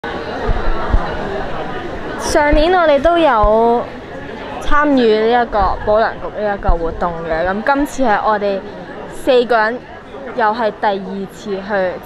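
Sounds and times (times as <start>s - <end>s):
chatter of voices: 0.0s - 12.0s
short low thumps: 0.4s - 3.8s.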